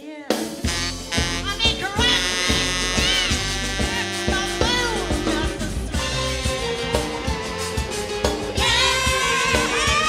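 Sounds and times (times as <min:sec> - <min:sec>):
live band playing: 0:00.0 - 0:10.0
steady drum beat: 0:00.0 - 0:10.0
saxophone playing: 0:00.6 - 0:10.0.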